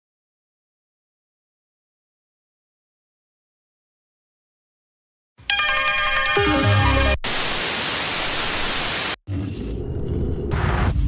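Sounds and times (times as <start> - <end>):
tv static hiss: 7.2 - 9.2.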